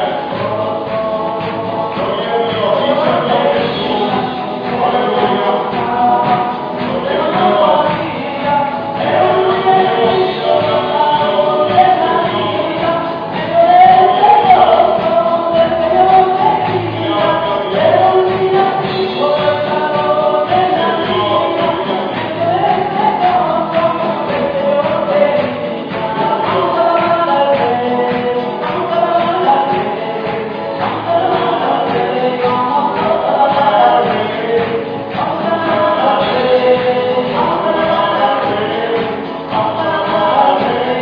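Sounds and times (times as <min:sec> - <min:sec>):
acoustic guitar: 0:00.0 - 0:41.0
drums: 0:00.0 - 0:41.0
electric guitar: 0:00.0 - 0:41.0
voices singing together: 0:00.0 - 0:41.0.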